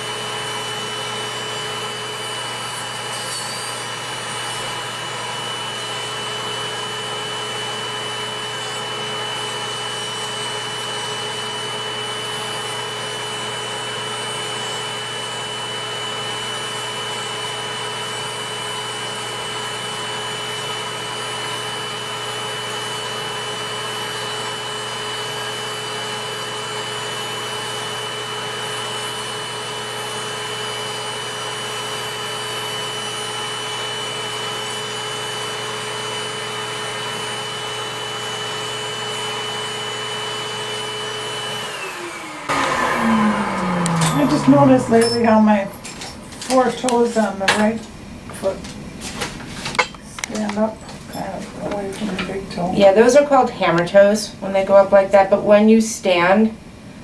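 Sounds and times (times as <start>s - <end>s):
electric nail drill whining: 0.0s - 47.5s.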